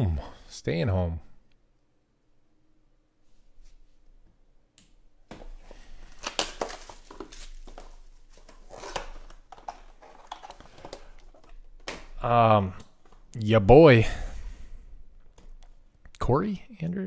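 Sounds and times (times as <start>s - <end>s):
wrapping crinkling and tearing: 5.7s - 12.2s.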